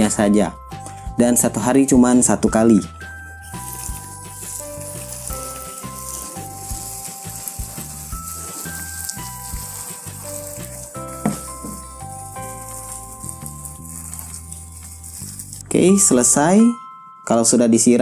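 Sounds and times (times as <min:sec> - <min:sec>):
pressure sprayer hissing: 0:03.5 - 0:15.6.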